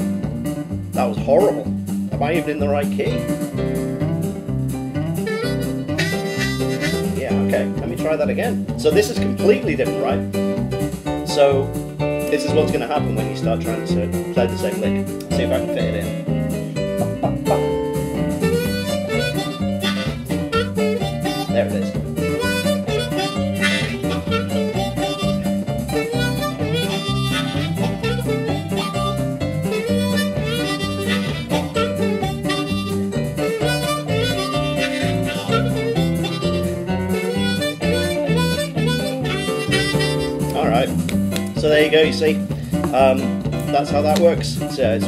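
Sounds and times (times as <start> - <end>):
blues backing guitar and bass: 0.0 - 45.0
blues harmonica bending notes: 0.0 - 45.0.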